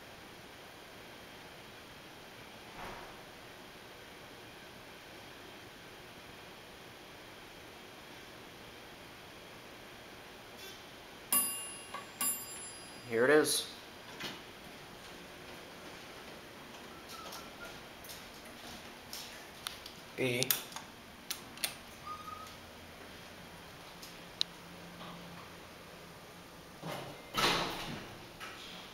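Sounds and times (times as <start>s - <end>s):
elevator low hum: 0.0s - 28.9s
elevator chime ding: 11.3s - 13.1s.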